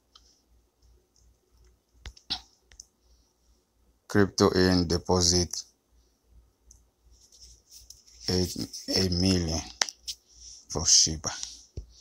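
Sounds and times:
soft clicks: 0.1s - 3.0s, 6.6s - 6.9s.

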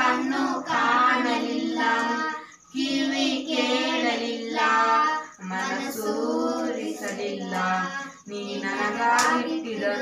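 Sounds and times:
children singing unaccompanied: 0.0s - 10.0s.

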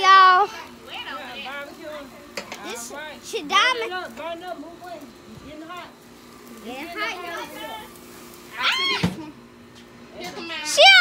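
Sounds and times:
young children calling: 8.4s - 9.4s, 10.2s - 11.0s
child squealing: 8.5s - 9.3s.

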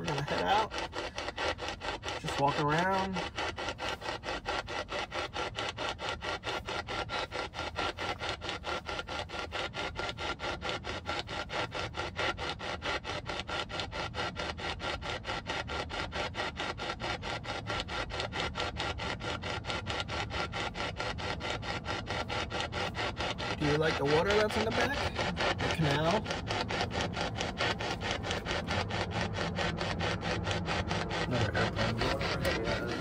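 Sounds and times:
choppy radio static: 23.6s - 26.8s, 30.8s - 33.0s.

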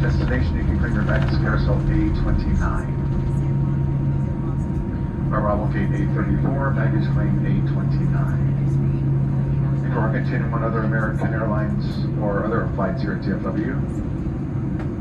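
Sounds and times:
aircraft cabin engine drone: 0.0s - 15.0s
low even hum: 0.0s - 15.0s.

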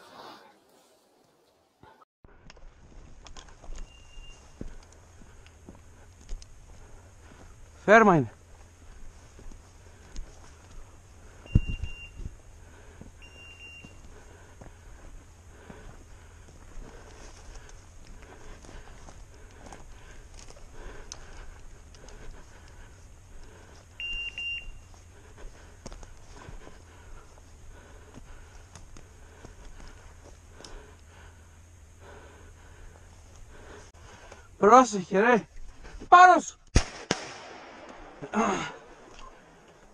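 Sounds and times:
footsteps through dry brush: 2.4s - 30.9s
electronic collar beeps: 3.8s - 4.4s, 11.4s - 12.3s, 13.2s - 14.0s, 24.0s - 24.9s.

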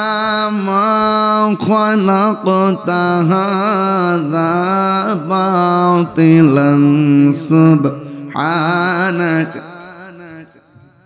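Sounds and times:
man chanting through loudspeaker: 0.0s - 11.0s
man breathing: 8.0s - 8.4s.

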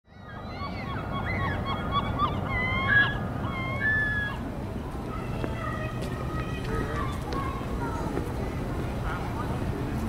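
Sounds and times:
geese honking: 0.3s - 4.5s.

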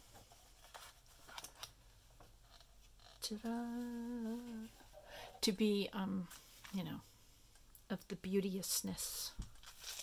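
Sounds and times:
paper crinkling: 0.1s - 1.7s, 9.6s - 10.0s.

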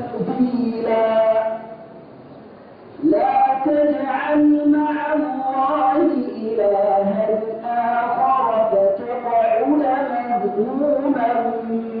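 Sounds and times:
man reciting melodically: 3.0s - 12.0s.

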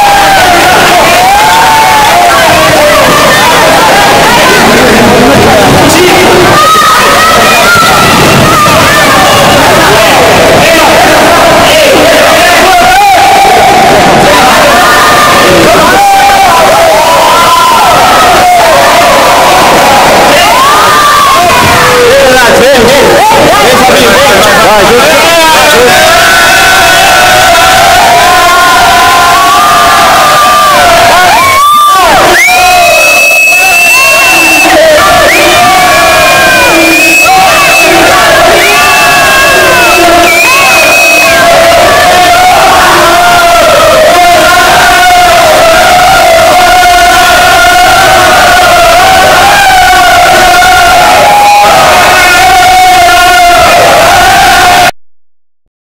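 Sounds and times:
group chanting and shouting: 0.0s - 55.0s
long high cries: 5.4s - 22.1s, 25.0s - 54.9s.

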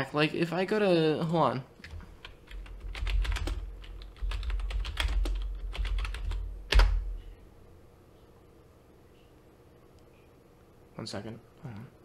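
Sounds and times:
computer keyboard typing: 1.8s - 7.3s.

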